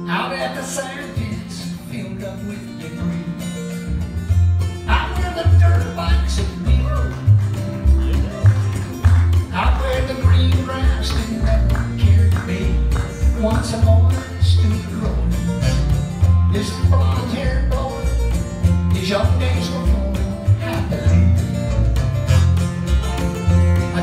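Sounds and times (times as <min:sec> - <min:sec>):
man singing lead vocal: 0:00.0 - 0:03.5, 0:04.8 - 0:07.3, 0:09.5 - 0:15.8, 0:16.4 - 0:21.5
plucked upright bass: 0:00.0 - 0:24.0
strummed acoustic guitar: 0:00.0 - 0:24.0
electric guitar: 0:02.1 - 0:24.0.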